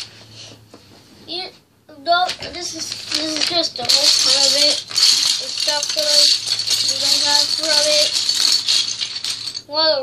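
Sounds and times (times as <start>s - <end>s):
plastic bricks clattering: 2.3s - 9.7s.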